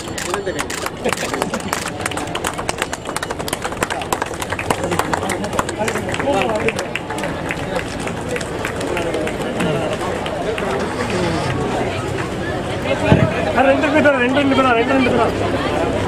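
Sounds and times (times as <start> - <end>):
crowd clapping: 0.0 - 12.8
babble of voices: 0.0 - 16.0.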